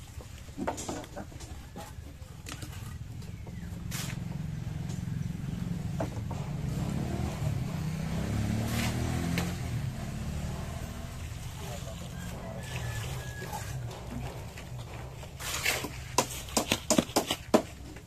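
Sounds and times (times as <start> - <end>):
vehicle engine passing by: 2.8 - 16.6.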